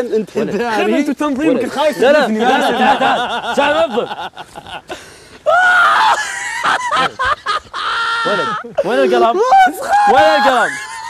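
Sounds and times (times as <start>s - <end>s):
person crying out: 5.5s - 11.0s.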